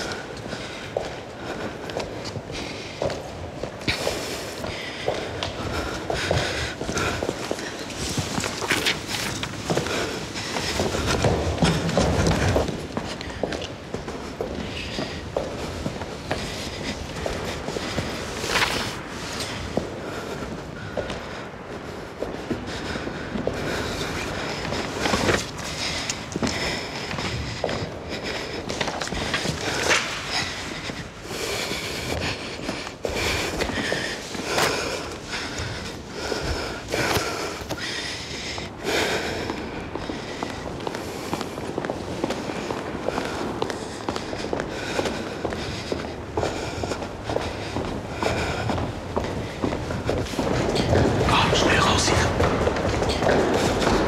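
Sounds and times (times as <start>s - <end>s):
footsteps on stone floor: 0.0s - 54.0s.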